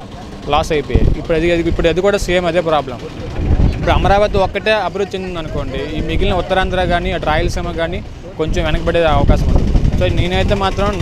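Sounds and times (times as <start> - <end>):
road traffic rumble: 0.0 - 11.0
man speaking: 3.8 - 11.0.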